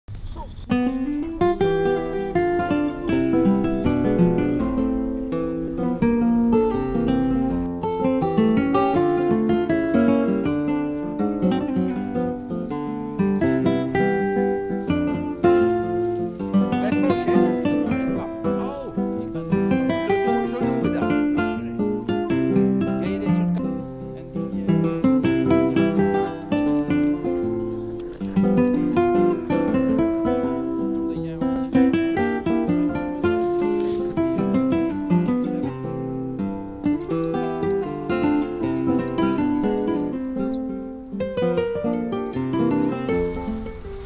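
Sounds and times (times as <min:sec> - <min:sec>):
acoustic guitar music: 0:00.1 - 0:44.0.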